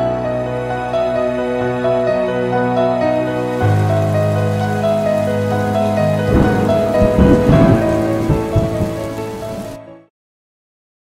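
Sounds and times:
soft background music: 0.0 - 10.1
heavy rain pouring: 1.8 - 10.0.

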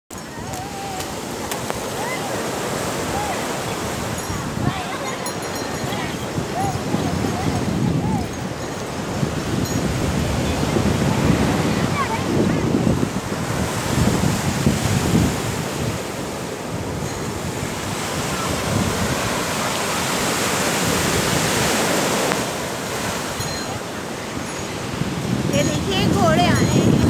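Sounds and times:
surf breaking on shore: 0.1 - 27.0
wind buffeting microphone: 0.1 - 27.0.

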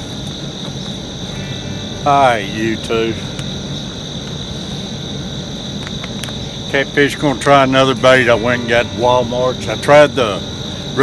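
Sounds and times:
insect chorus drone: 0.0 - 11.0
low steady rumble: 0.0 - 11.0.

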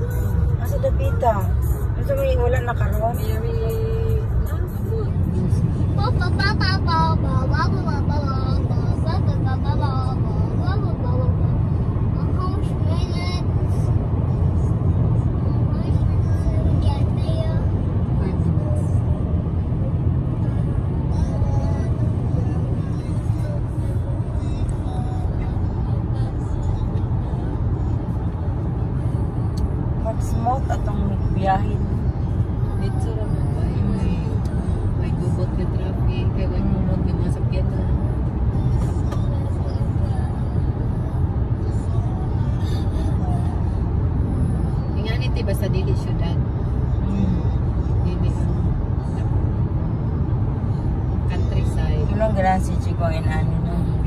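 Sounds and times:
car cabin road and engine noise: 0.0 - 54.0.

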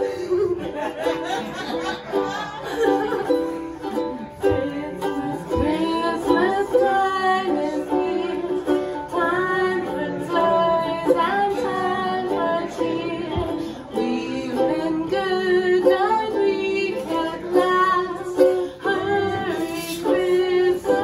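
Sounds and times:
woman singing: 0.0 - 1.0, 2.8 - 21.0
ukulele playing: 0.0 - 21.0.

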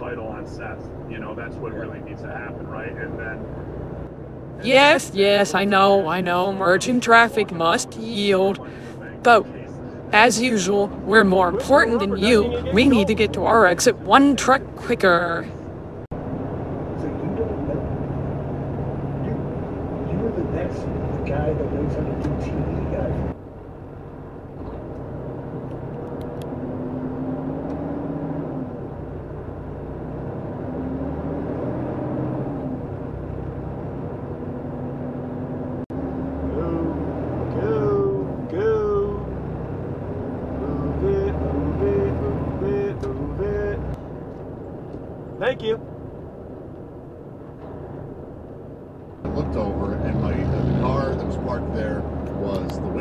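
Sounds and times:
car engine and road noise: 0.0 - 53.0
indistinct voices: 4.6 - 15.5, 36.4 - 39.4, 40.5 - 44.0.

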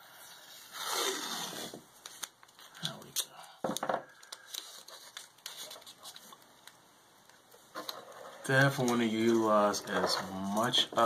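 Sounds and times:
tape peeling off roll: 0.4 - 2.7
tape crinkles and rustles: 0.8 - 11.0
tape crack: 0.9 - 11.0.

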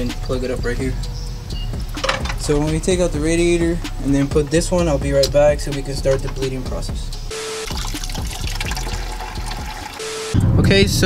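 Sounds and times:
liquid splashing into plastic bucket: 7.7 - 10.0.

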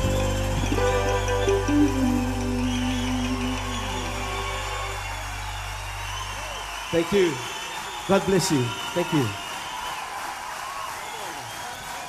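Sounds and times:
live band held chord: 0.0 - 6.0
low bass: 0.0 - 6.7.

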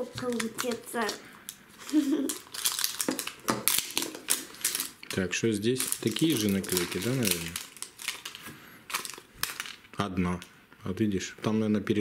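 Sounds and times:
crinkly wrapping being peeled: 0.0 - 10.4.

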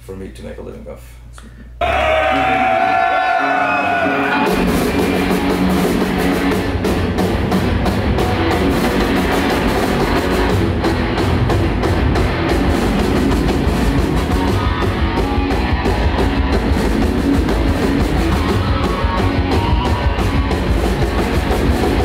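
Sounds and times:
heavy metal band playing: 1.8 - 22.0.

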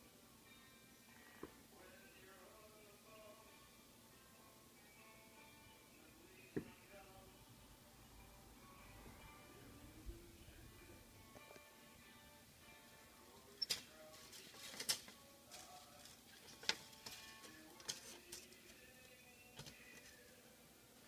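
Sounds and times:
soft background music: 0.0 - 21.0.

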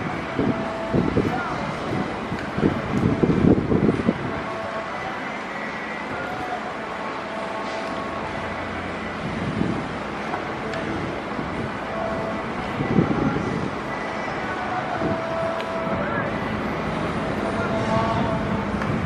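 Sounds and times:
steady background hum: 0.0 - 19.0.

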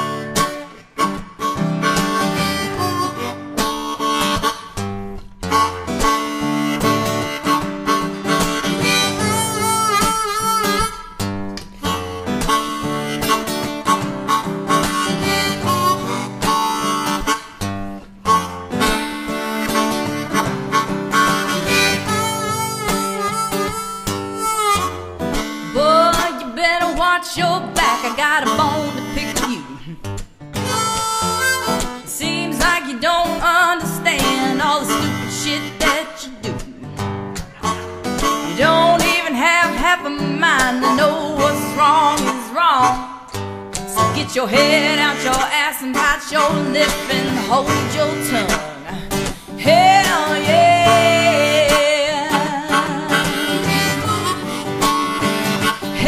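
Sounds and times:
acoustic guitar: 0.0 - 56.0
harmonica melody: 0.0 - 56.0.

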